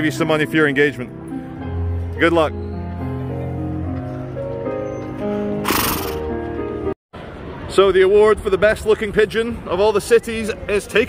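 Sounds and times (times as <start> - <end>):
electronic keyboard chords: 0.0 - 6.9.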